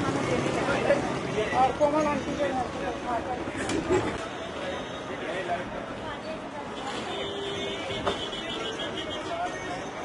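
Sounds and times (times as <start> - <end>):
voices of passers-by: 0.0 - 10.0.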